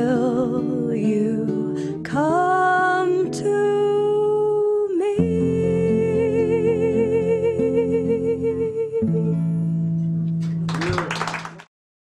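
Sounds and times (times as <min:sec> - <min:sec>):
woman singing: 0:00.0 - 0:09.6
acoustic guitar: 0:00.0 - 0:10.8.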